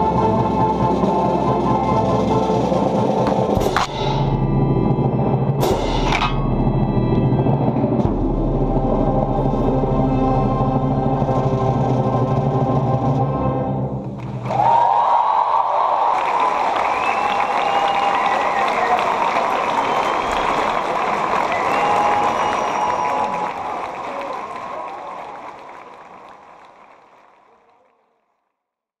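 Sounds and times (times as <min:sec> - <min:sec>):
audience applause and cheers: 0:14.0 - 0:28.4.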